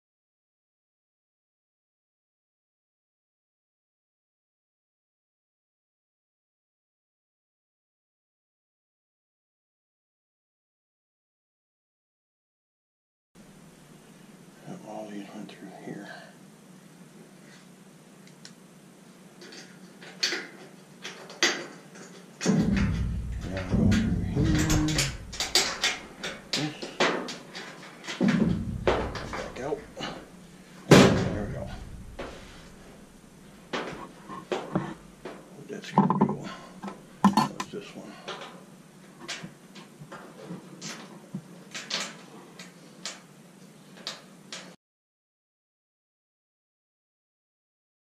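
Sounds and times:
sharp knock: 0:22.5 - 0:26.4, 0:28.2 - 0:30.3, 0:30.9 - 0:33.0.

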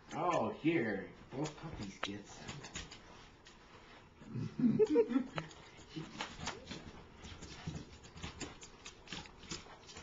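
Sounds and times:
dog claws clicking on wooden floor: 0:01.3 - 0:03.6, 0:05.4 - 0:10.0.

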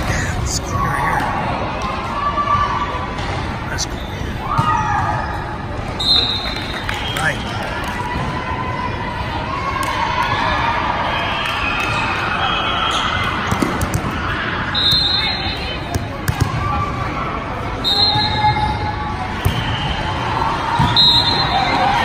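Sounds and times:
volleyball thumps: 0:15.9 - 0:16.6.

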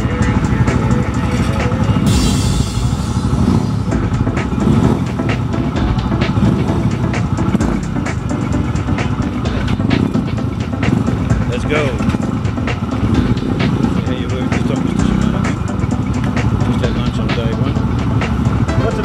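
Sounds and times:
motorcycle engines idling: 0:00.0 - 0:19.0
people's voices: 0:10.9 - 0:19.0.

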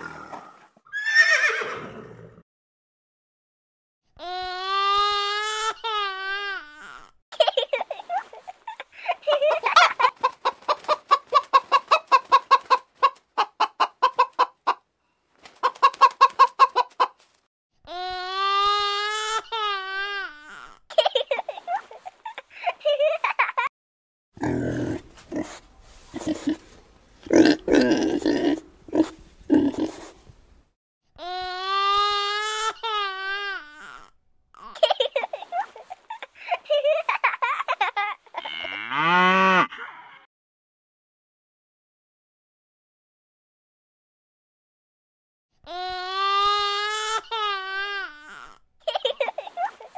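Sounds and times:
hen clucking: 0:09.6 - 0:14.8, 0:15.6 - 0:17.2
cow mooing: 0:38.5 - 0:39.7.

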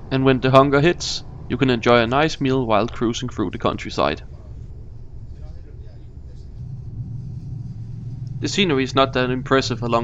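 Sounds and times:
train rumble inside carriage: 0:00.0 - 0:10.0.

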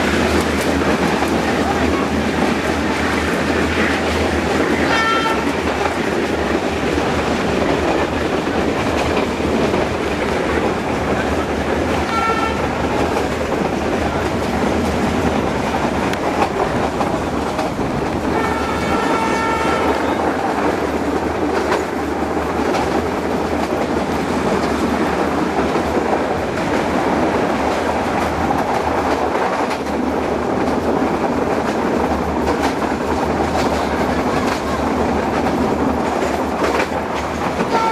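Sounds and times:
train rumble: 0:00.0 - 0:37.9
train wheels clattering over rail joints: 0:00.0 - 0:37.9
train horn: 0:04.8 - 0:05.6, 0:12.0 - 0:13.0, 0:18.3 - 0:20.6, 0:37.6 - 0:37.9.

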